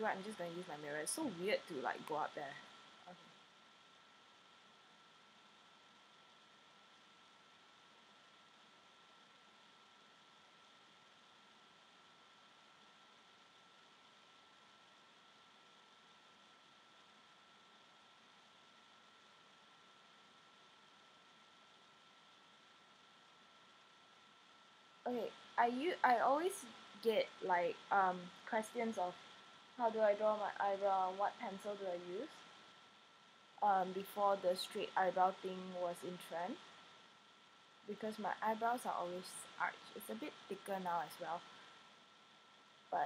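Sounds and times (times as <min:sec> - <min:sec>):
faint microphone hiss: 0:00.0 - 0:43.0.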